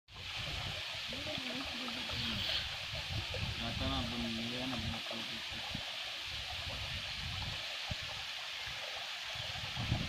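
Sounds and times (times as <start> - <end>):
water pouring over causeway: 0.1 - 10.0.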